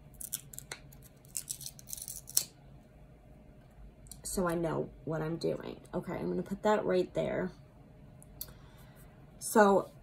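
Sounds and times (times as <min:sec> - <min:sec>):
small objects clicking and scraping: 0:00.2 - 0:02.5.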